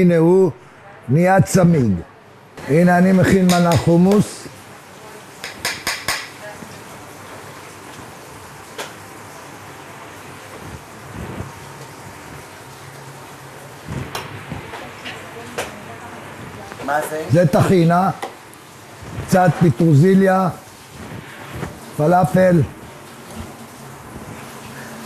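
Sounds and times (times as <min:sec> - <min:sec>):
kitchen background: 0:02.6 - 0:25.0.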